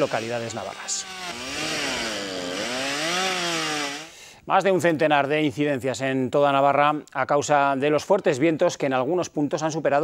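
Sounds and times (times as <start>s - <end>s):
chainsaw cutting wood: 0.0s - 4.2s.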